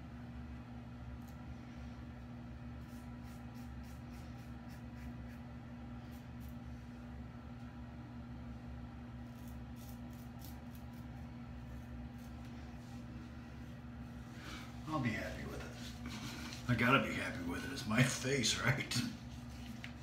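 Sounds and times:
steady low hum: 0.0s - 20.0s
razor scraping stubble: 2.8s - 6.6s, 9.2s - 12.9s.

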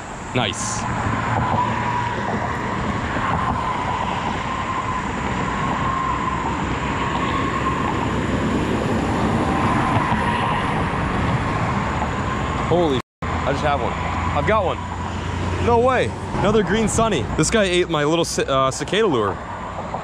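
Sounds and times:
highway traffic noise: 0.0s - 20.0s.

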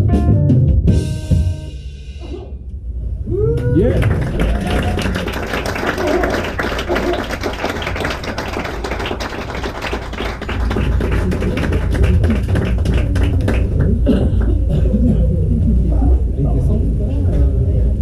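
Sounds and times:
steady low bass: 10.4s - 18.0s.

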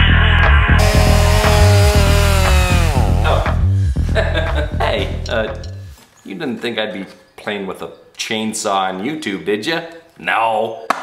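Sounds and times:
music with steady beat: 0.4s - 6.0s
chainsaw engine sound effect: 0.8s - 3.8s.

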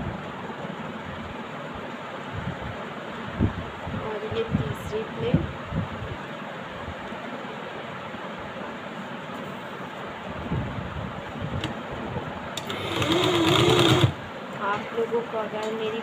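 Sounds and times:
electric sewing machine stitching: 12.6s - 14.2s.

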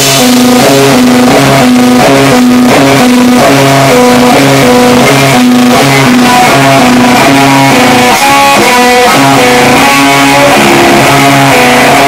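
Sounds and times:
electric guitar riff: 0.0s - 12.0s
rock band playing live: 0.0s - 12.0s.

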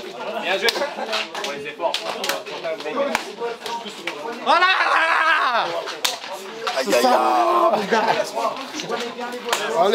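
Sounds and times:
men's voices chattering: 0.0s - 9.9s.

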